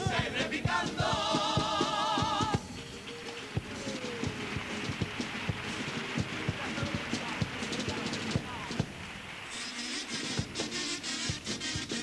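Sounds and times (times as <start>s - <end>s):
bass drum steady beat: 0.0s - 9.2s, 10.2s - 12.0s
sharp drum taps: 3.5s - 9.0s, 10.3s - 11.5s.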